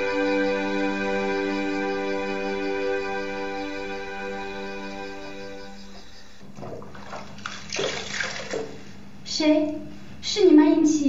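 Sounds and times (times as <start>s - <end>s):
bathwater splashing and trickling: 6.4s - 9.0s.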